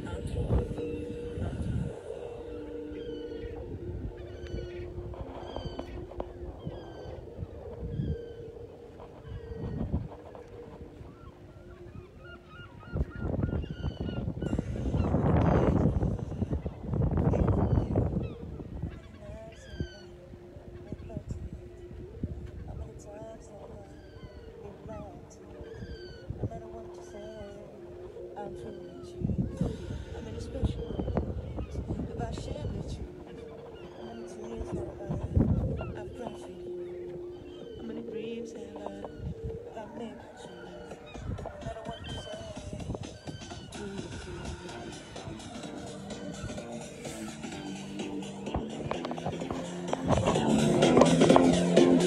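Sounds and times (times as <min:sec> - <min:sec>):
gulls crying: 0:00.0 - 0:52.0
wind rumble on microphone: 0:00.0 - 0:52.0.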